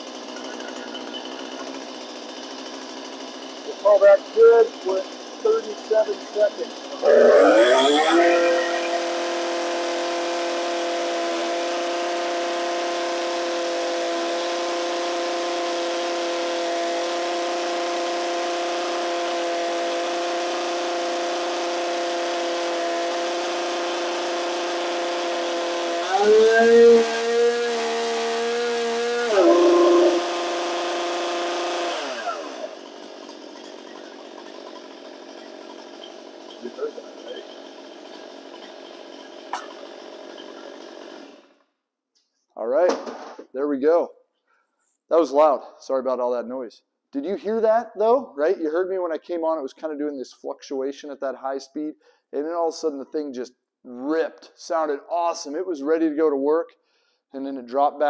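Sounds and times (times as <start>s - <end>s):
chainsaw engine running: 0.0s - 41.6s.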